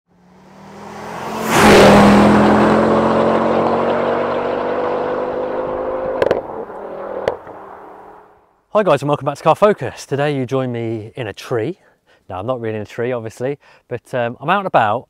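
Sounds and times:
car engine sound effect: 0.1s - 8.4s.

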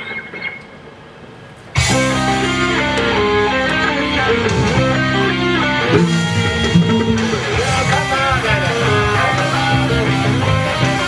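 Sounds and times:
electric guitar and bass playing: 1.8s - 11.0s.

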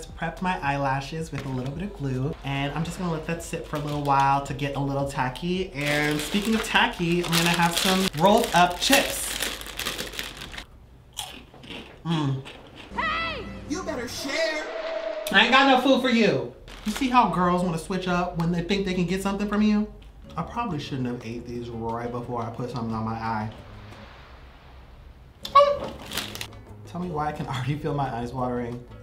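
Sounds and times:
chips being crunched and chewed: 5.8s - 12.9s, 26.0s - 26.5s
high-pitched vocal squeal: 25.4s - 26.1s.

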